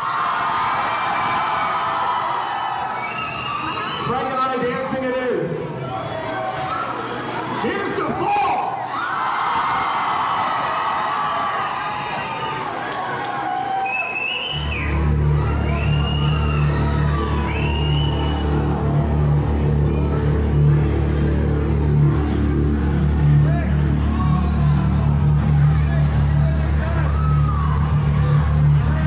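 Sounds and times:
crowd cheering and whooping: 0.0s - 4.4s, 8.7s - 29.0s
low music drone: 14.6s - 29.0s.

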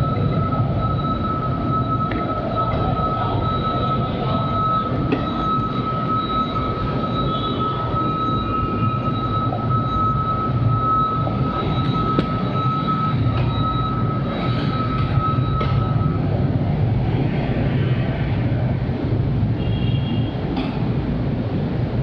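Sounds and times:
high-pitched whine: 0.0s - 20.6s
road and wind noise: 0.0s - 22.0s.

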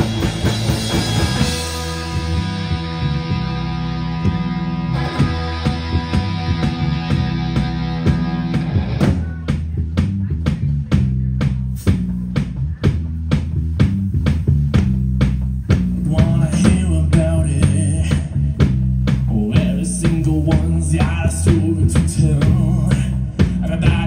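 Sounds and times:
electric guitar: 0.0s - 9.6s
bass guitar: 0.0s - 24.0s
drum kit beats: 0.0s - 24.0s
person singing: 16.0s - 18.5s, 19.3s - 24.0s.

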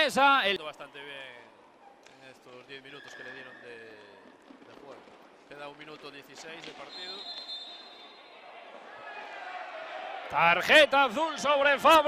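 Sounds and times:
referee's whistle blast: 6.8s - 8.3s.

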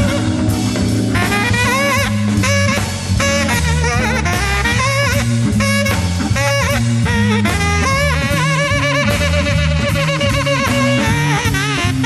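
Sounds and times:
organ bass line: 0.0s - 12.0s
tenor saxophone phrases: 0.0s - 12.0s.

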